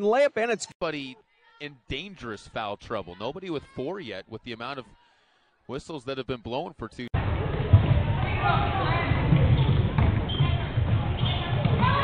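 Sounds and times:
echoing voices in a gym: 0.0 - 12.0
basketball dribbling: 7.5 - 12.0.

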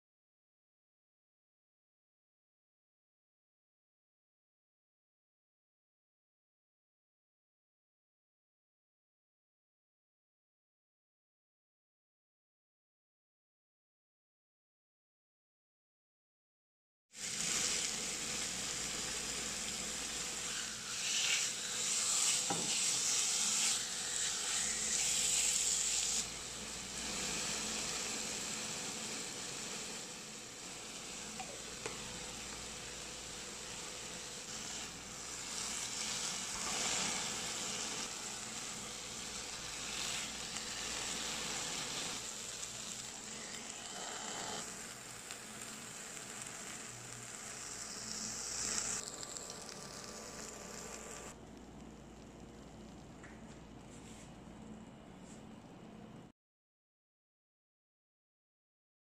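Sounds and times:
chicken sizzling in pan: 17.2 - 51.4.

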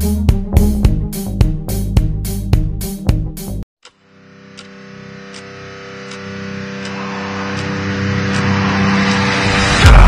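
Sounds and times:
low drone: 4.2 - 10.0.

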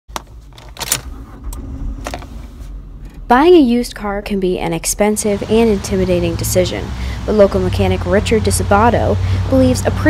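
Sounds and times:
low steady hum: 0.2 - 10.0
key turning in ignition: 0.4 - 3.3.

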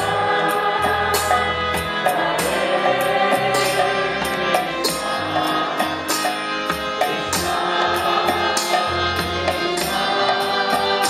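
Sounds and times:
voices chanting together: 0.0 - 6.1, 7.0 - 11.0
harmonium: 0.0 - 11.0
percussion beat: 0.0 - 11.0.

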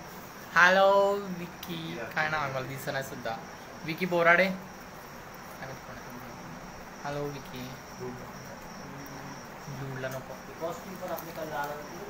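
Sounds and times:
high-pitched chirring: 0.6 - 12.0.

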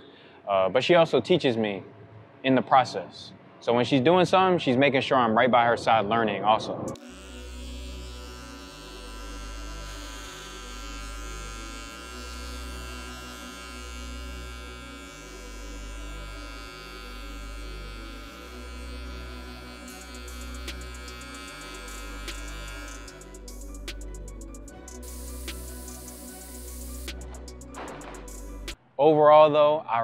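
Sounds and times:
deep bass notes: 6.6 - 28.8
sustained synth chords: 6.9 - 28.8.

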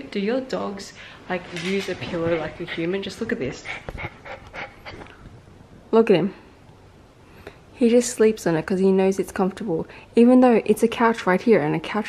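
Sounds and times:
dog panting: 1.7 - 5.2.

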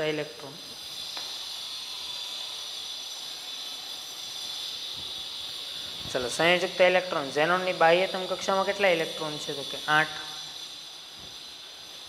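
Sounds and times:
steady background hiss: 0.0 - 12.0.

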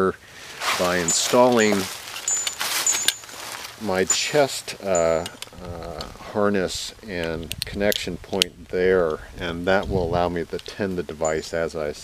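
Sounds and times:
fabric rustling: 0.4 - 4.1
metallic clinks of carabiners: 0.8 - 6.1, 10.6 - 11.6.

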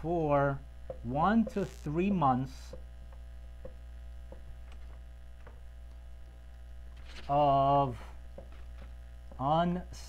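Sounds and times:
electrical mains hum: 0.0 - 10.0
marker ticking on whiteboard: 0.9 - 1.7, 2.6 - 4.5.

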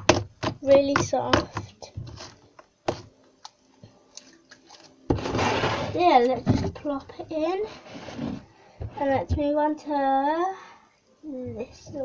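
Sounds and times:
loud rustling scrape: 5.2 - 6.3, 7.6 - 8.5.

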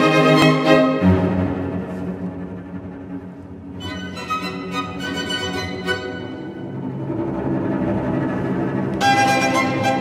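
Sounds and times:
string orchestra low chord: 0.0 - 10.0.

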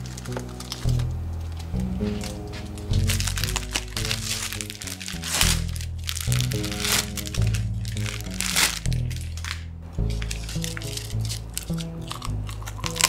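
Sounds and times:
background music: 0.0 - 13.0
plastic film crinkling and tearing: 0.0 - 13.0.

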